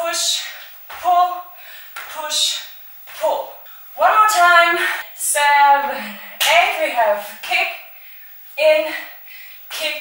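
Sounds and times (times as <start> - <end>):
woman calling out: 3.2 - 7.8.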